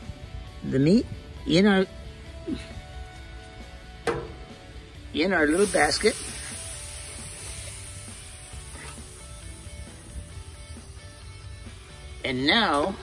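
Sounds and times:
faint background music: 0.0s - 13.0s
beer sizzling in foil tray: 5.4s - 13.0s.

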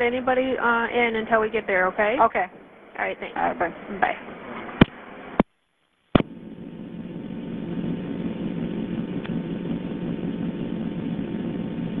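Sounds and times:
telephone line hum and hiss: 0.0s - 12.0s.

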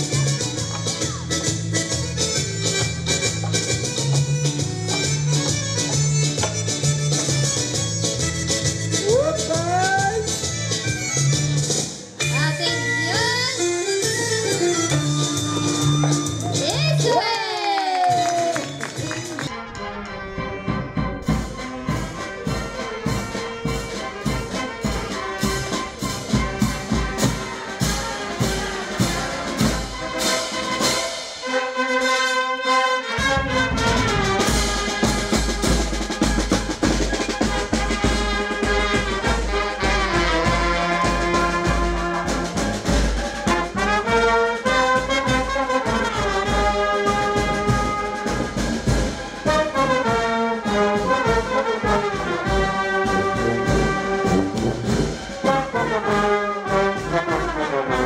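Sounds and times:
bass drum and snare drum: 0.0s - 12.2s, 14.0s - 17.2s, 20.4s - 31.5s, 33.1s - 58.0s
clarinets saxophones and trumpets: 18.6s - 58.0s.

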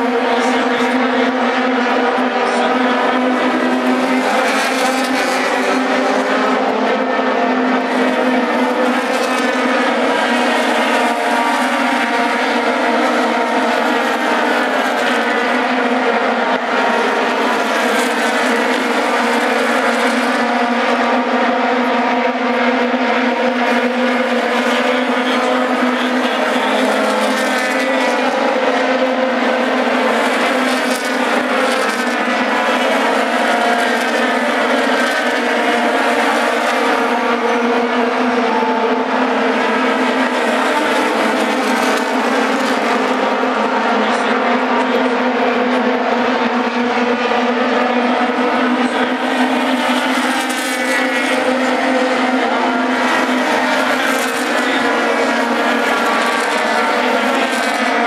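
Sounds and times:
race car engines passing: 0.0s - 58.0s.

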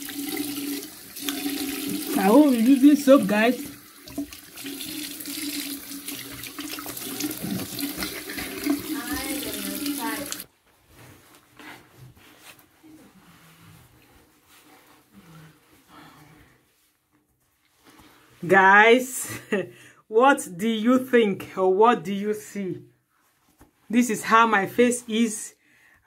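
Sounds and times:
tap water running into sink: 0.0s - 10.4s
towel rubbing on face: 5.1s - 18.5s.

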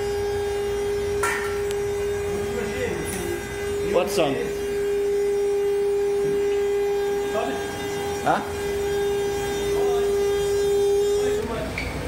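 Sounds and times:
machine whine: 0.0s - 12.0s.

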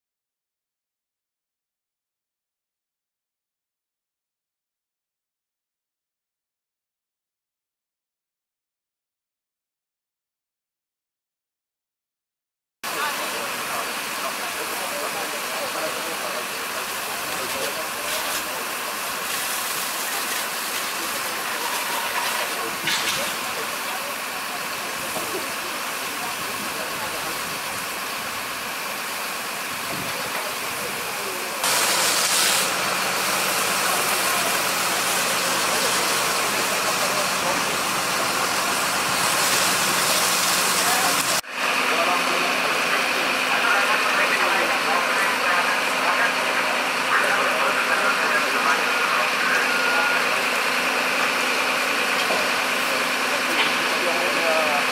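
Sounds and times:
fire engine pump running: 12.9s - 54.9s
hissing water spray and steam: 12.9s - 54.9s.

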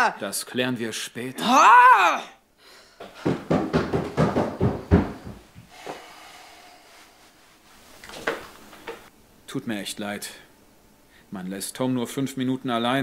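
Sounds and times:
footsteps: 3.0s - 6.2s, 7.7s - 9.1s
knocking on door: 3.2s - 5.5s.

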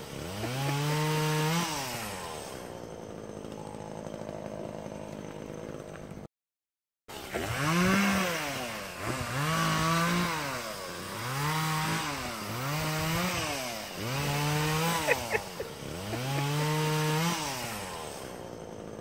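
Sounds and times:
small engine revving: 0.0s - 6.3s, 7.1s - 19.0s.

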